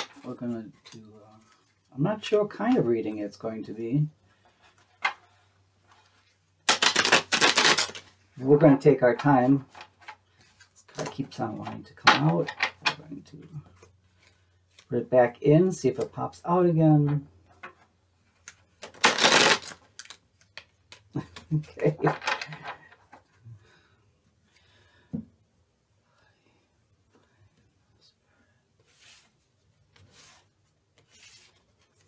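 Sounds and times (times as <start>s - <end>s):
cards being shuffled: 6.6s - 8.1s, 18.3s - 22.8s, 29.9s - 32.0s.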